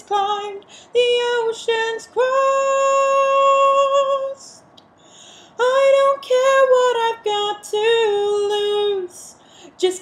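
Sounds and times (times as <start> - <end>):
woman singing unaccompanied: 0.0 - 4.7, 5.5 - 10.0.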